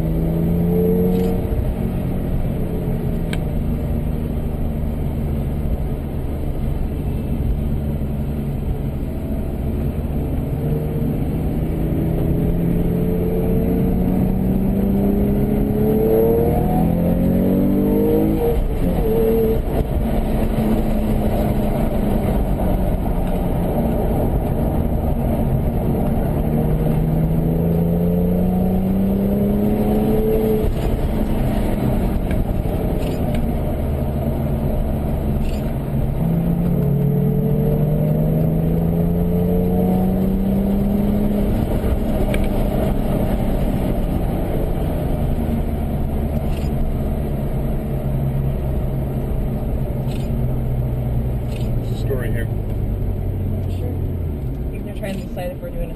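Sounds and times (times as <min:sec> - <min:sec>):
car engine accelerating: 0:00.0 - 0:55.9
road noise rumble: 0:00.0 - 0:55.9.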